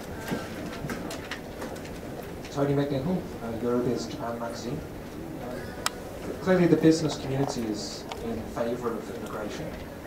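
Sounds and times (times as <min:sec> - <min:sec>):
murmur of audience: 0:00.0 - 0:10.0.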